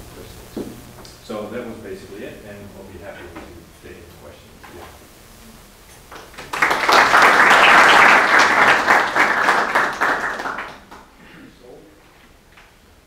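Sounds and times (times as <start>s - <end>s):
small audience applauding: 6.1s - 11.1s.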